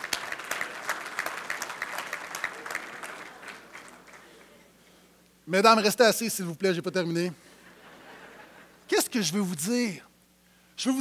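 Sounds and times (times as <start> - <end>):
crowd clapping: 0.0 - 4.8.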